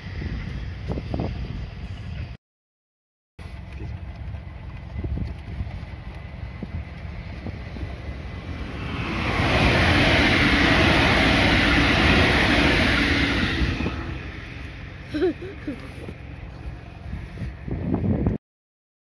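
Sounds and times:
electric train passing: 0:00.0 - 0:02.4, 0:04.0 - 0:17.9.

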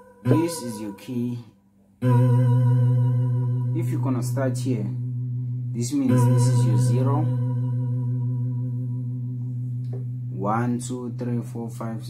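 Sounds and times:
held keyboard note: 0:00.0 - 0:12.0.

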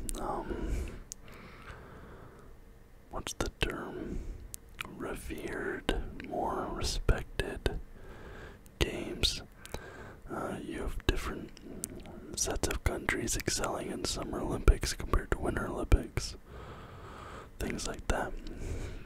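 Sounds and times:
man whispering: 0:00.0 - 0:01.2, 0:03.1 - 0:07.9, 0:08.8 - 0:16.4, 0:17.6 - 0:19.0.

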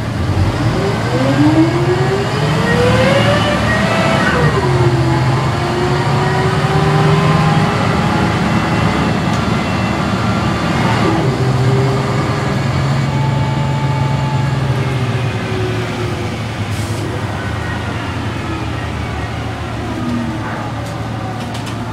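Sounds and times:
bus diesel engine from inside: 0:00.0 - 0:21.9.

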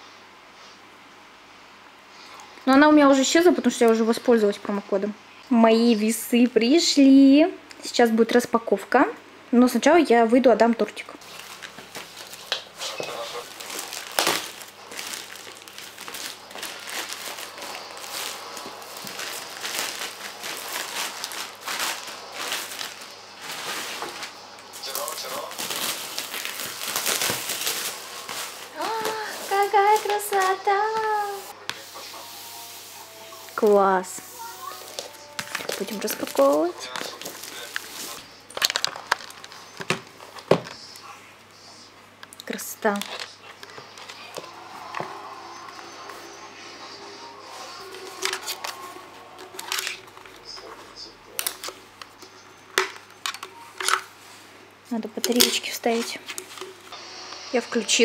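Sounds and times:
woman speaking: 0:02.6 - 0:11.2, 0:28.7 - 0:31.6, 0:33.5 - 0:36.9, 0:42.4 - 0:43.2, 0:54.8 - 0:56.3, 0:57.5 - 0:58.0
plastic packaging crinkling and tearing: 0:11.2 - 0:32.2, 0:34.4 - 0:41.0, 0:47.8 - 0:54.2, 0:55.2 - 0:56.9.

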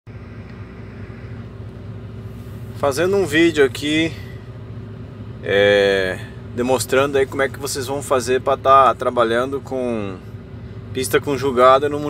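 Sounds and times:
combine harvester engine drone: 0:00.1 - 0:12.0.

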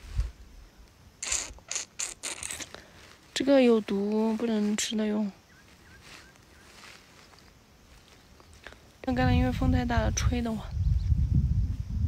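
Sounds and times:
rustling scrapes: 0:05.6 - 0:08.7.

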